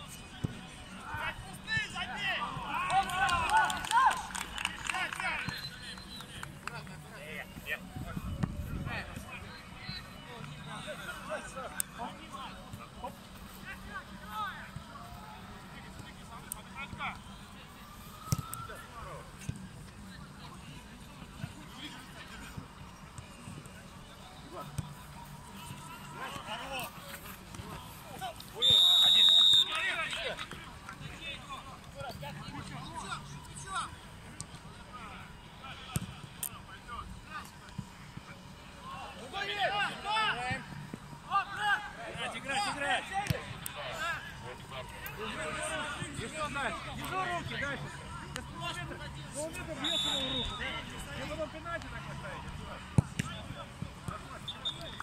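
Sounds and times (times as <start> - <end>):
referee's whistle blast: 28.6 - 29.8, 49.8 - 50.8, 54.5 - 55.0.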